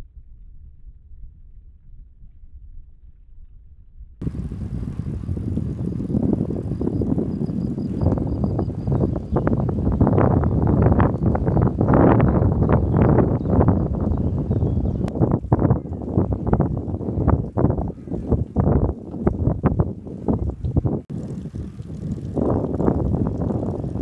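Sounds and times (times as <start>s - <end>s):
bicycle road rumble: 0.0s - 24.0s
wind buffeting microphone: 4.2s - 24.0s.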